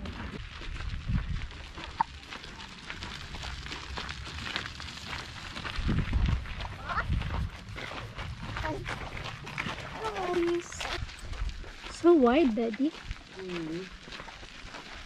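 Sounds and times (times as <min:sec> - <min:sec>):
wind buffeting microphone: 0:00.3 - 0:13.3.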